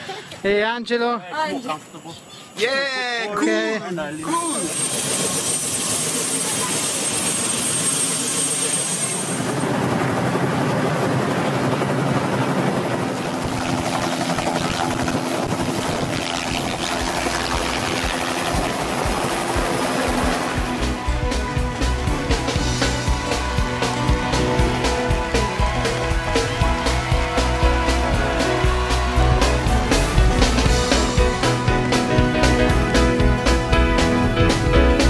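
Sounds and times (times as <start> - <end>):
helicopter rotor and engine: 4.2 - 32.0
high turbine whine: 4.2 - 35.0
rushing wind: 9.4 - 28.9.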